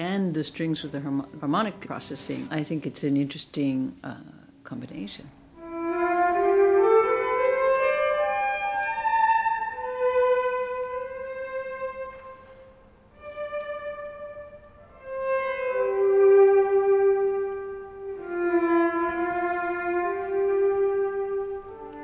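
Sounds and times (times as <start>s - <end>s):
electric violin held notes: 5.6s - 22.0s.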